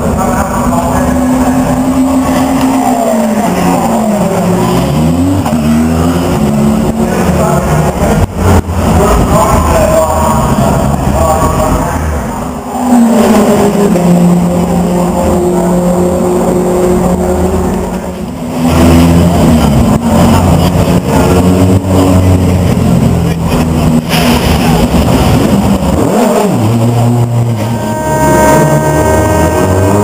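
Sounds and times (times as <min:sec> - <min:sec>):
racing car engine revving: 0:00.0 - 0:30.0.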